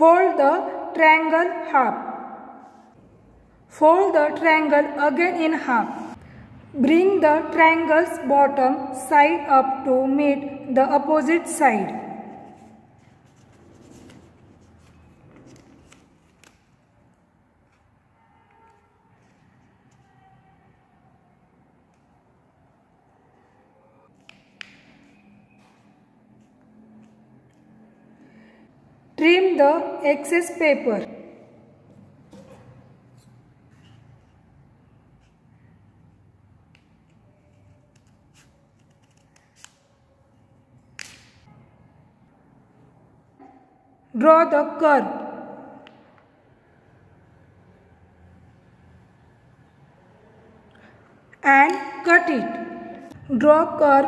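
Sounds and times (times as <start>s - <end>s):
paper rustling and creasing: 12.4s - 17.0s, 37.4s - 39.9s
scissors snipping paper: 36.6s - 40.1s.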